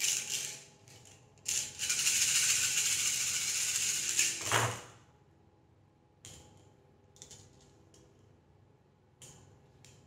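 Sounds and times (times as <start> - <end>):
small pieces rattling in hands: 1.4 - 4.4.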